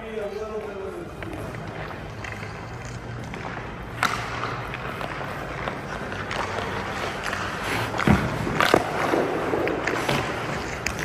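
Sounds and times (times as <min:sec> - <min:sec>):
ice skate blades scraping: 0:00.2 - 0:11.0.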